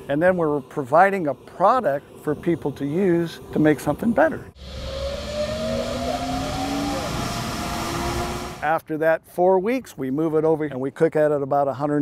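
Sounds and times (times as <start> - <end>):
motor humming and whining: 4.6 - 8.7.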